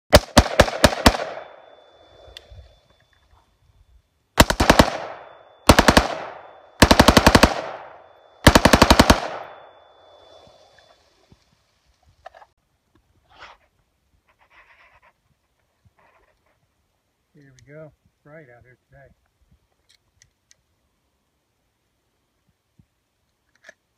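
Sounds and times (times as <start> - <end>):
automatic rifle bursts with echo: 0.1 - 1.6, 4.4 - 9.8.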